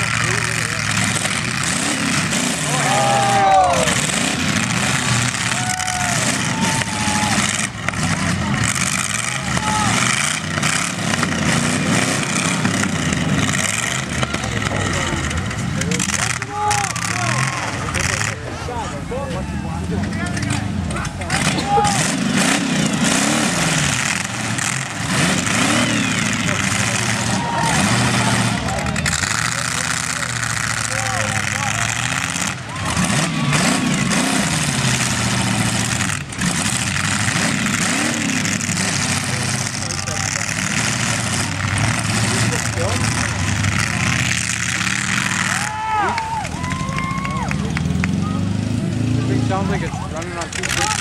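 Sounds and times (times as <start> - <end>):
car engines revving: 0.0 - 51.0.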